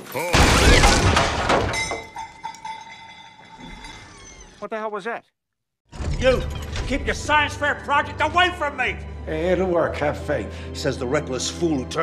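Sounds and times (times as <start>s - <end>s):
loud crash: 0.4s - 2.0s.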